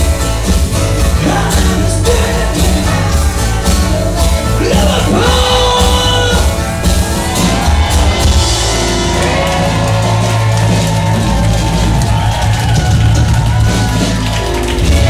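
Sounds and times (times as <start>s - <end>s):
live rock band on acoustic guitars: 0.0s - 15.0s.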